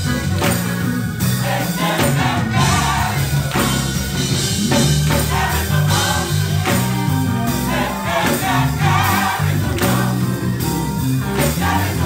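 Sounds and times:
bass line: 0.0s - 12.0s
church band playing: 0.0s - 12.0s
gospel choir singing: 0.2s - 12.0s.

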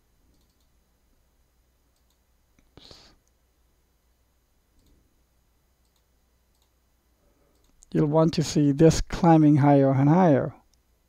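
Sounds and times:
computer mouse clicking: 0.3s - 0.8s, 1.9s - 2.7s, 4.8s - 5.0s, 5.8s - 6.8s, 7.5s - 7.9s.

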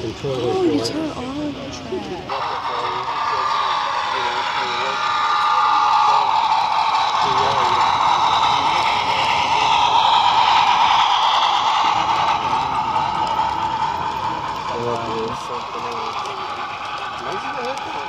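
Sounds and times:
model train running on rails: 0.0s - 18.0s
voices chattering: 0.0s - 18.0s.

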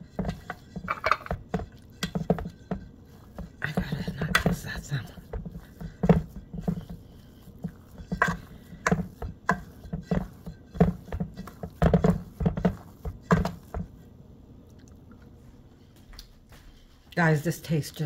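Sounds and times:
metal spoon scraping a bowl: 0.0s - 13.6s
wet squishing paste: 0.0s - 14.0s.

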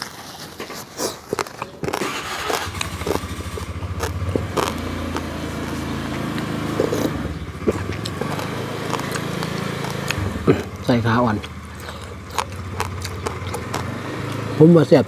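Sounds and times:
eating sounds: 0.0s - 15.0s
small engine running: 2.0s - 15.0s.

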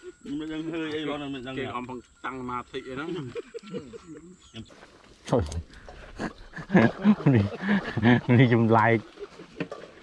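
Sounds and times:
men talking: 0.0s - 9.4s.

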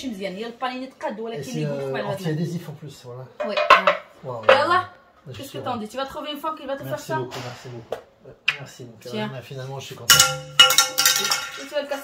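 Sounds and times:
metal plates clattering: 3.4s - 4.9s, 10.1s - 12.0s.

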